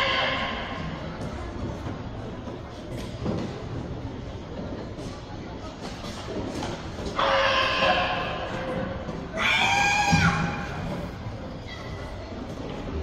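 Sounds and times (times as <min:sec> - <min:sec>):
sports hall background noise: 0:00.0 - 0:13.0.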